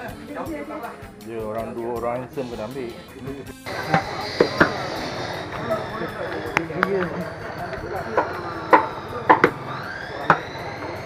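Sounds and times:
cleavers chopping meat on wood: 8.2s - 9.6s.

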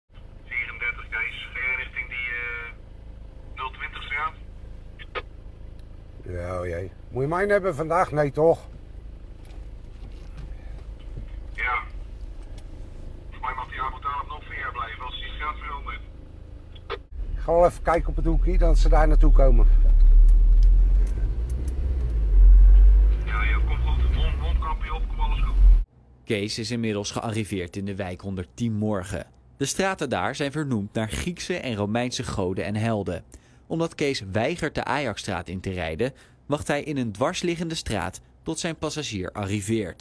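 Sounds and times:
engine and road rumble: 0.1s - 40.0s
low hum in vehicle cabin: 0.1s - 40.0s.

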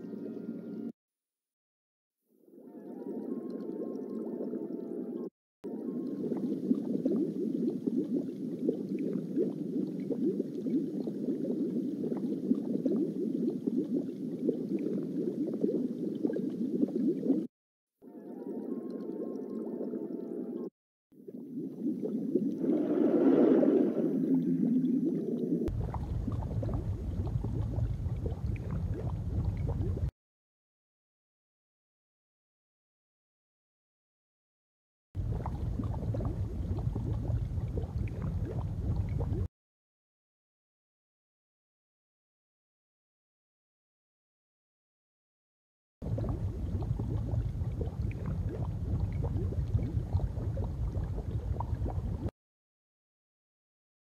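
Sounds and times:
water bubbling and gurgling: 2.4s - 30.1s, 35.2s - 39.5s, 46.0s - 52.3s.

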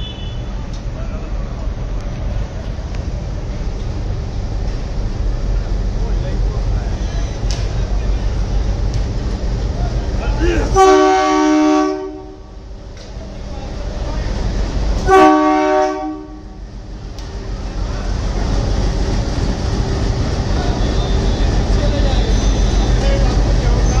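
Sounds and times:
locomotive air horn blast: 0.0s - 0.6s, 10.6s - 12.6s, 15.0s - 16.6s
locomotive engine and wheels rumbling: 0.0s - 24.0s.

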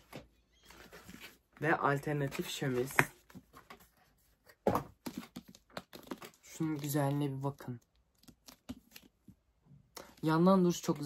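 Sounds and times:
book jacket rustling: 0.0s - 7.2s.

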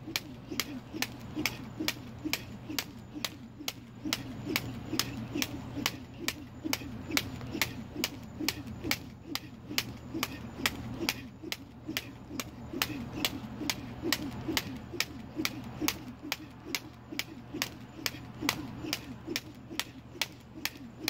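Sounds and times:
jump rope slapping asphalt: 0.0s - 21.0s.

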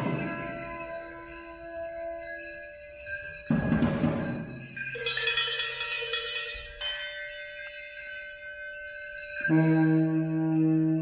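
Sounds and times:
struck metal bell ringing: 0.0s - 11.0s.

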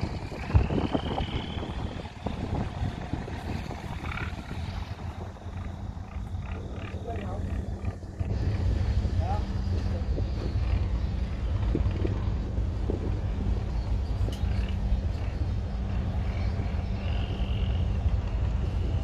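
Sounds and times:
boat engine rumbling: 0.0s - 19.0s
wind buffeting microphone: 0.0s - 19.0s.

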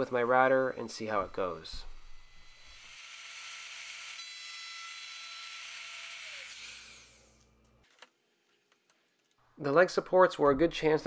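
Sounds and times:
trim router whining: 0.0s - 7.2s.

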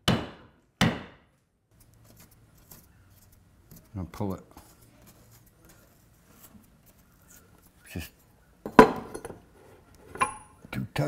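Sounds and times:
faint handling of cotton: 1.7s - 8.5s
metal tool clinking: 10.1s - 10.6s.

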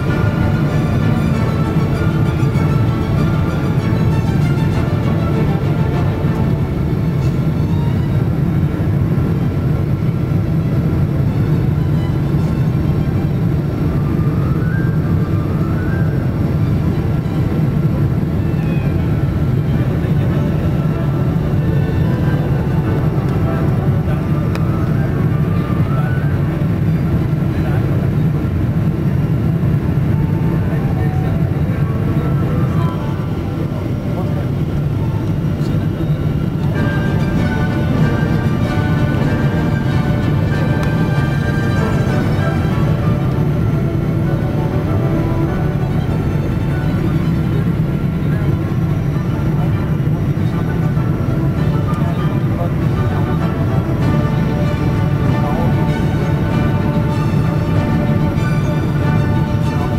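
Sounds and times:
jet engine cabin drone: 0.0s - 59.9s.

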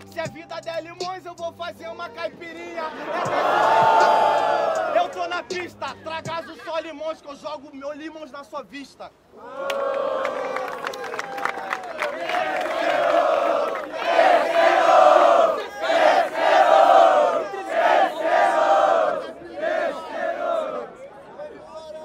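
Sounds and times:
crowd shouting and chanting: 0.0s - 6.8s, 11.6s - 22.0s.

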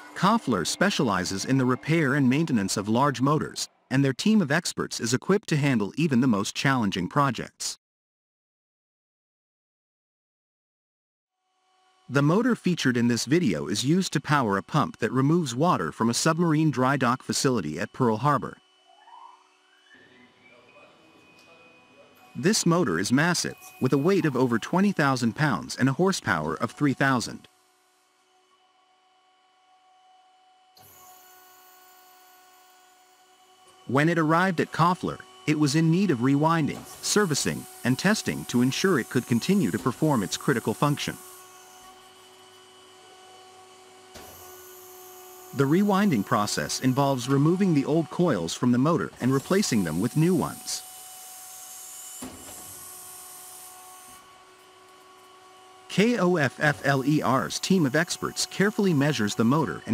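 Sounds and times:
electric motor rotor whirring: 16.2s - 20.4s, 21.0s - 59.9s.

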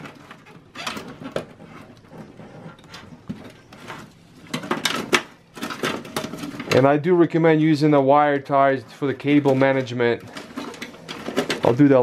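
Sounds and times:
cables rustling: 0.0s - 7.0s, 8.4s - 12.0s.

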